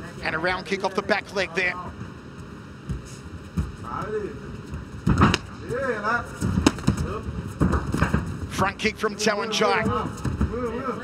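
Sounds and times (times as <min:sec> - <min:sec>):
low arena hum: 0:00.0 - 0:11.0.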